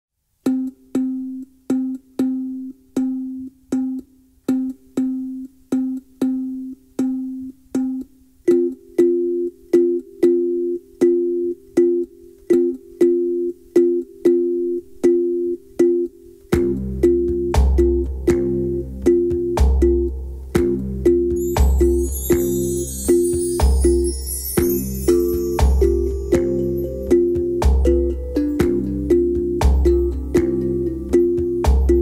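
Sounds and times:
steel tongue drum notes: 0:00.4 - 0:32.0.

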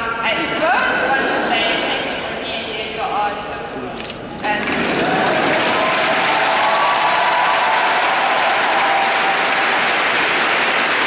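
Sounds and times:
audience applauding: 0:04.4 - 0:11.0.

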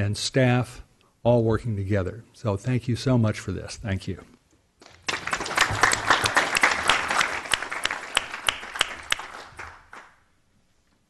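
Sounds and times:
audience applause: 0:04.8 - 0:10.2.

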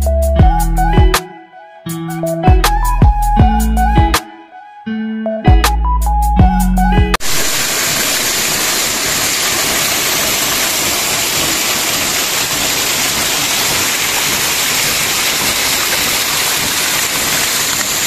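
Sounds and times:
waterfall splashing over rocks: 0:07.2 - 0:18.0.

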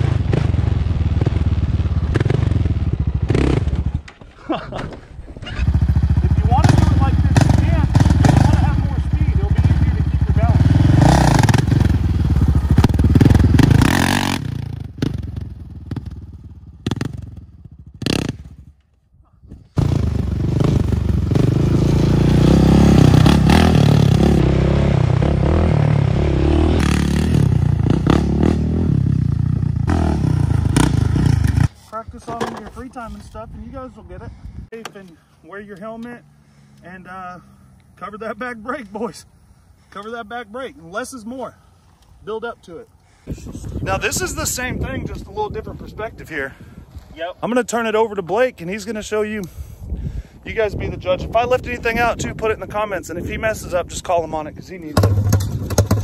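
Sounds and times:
atv engine revving: 0:00.0 - 0:04.2, 0:05.2 - 0:18.6, 0:19.7 - 0:31.8, 0:54.9 - 0:56.0.

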